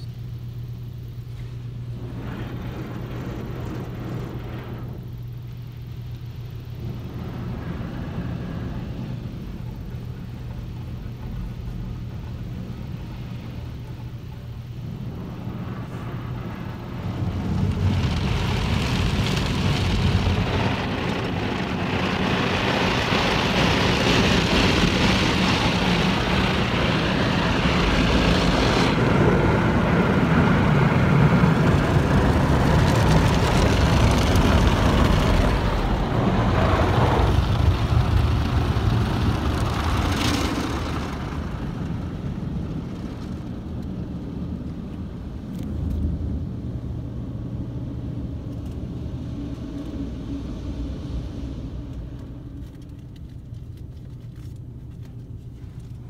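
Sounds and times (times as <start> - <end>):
low hum: 0.0 - 56.0
car wash brushes and spraying water: 1.4 - 46.5, 47.1 - 56.0.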